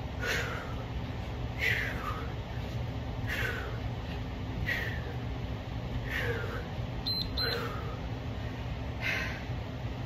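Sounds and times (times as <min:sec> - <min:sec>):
high electronic beeps: 0:07.0 - 0:07.6.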